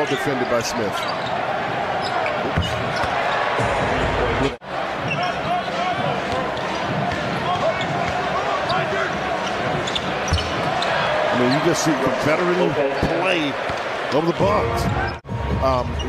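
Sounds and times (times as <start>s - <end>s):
shoe squeaks on court: 0.0s - 1.4s, 8.7s - 11.8s.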